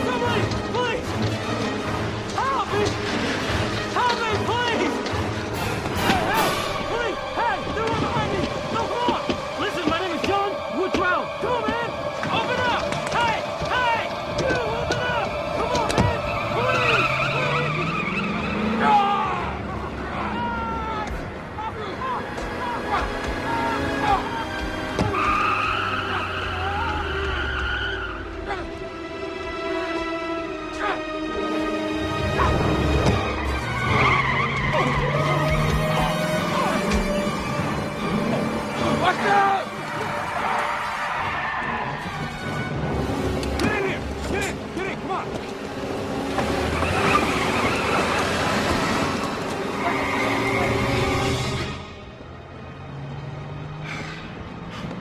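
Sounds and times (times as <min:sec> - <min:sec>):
raised voices: 0:06.0 - 0:28.9
car tyres squealing: 0:12.3 - 0:28.4, 0:32.0 - 0:55.0
car engine rumble: 0:32.4 - 0:55.0.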